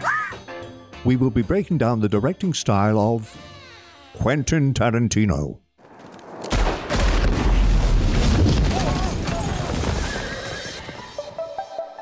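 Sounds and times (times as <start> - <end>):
horse whinnying: 9.6 - 11.3.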